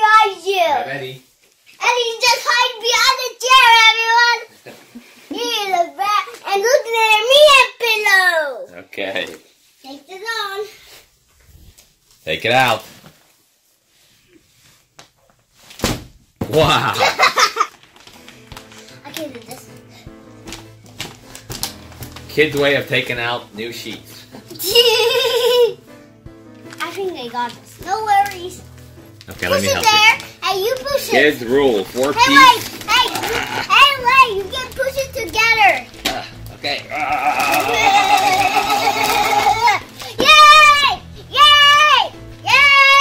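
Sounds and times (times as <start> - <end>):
background music: 16.5 - 43.0
plastic packaging crinkling: 17.3 - 23.3, 26.6 - 40.9.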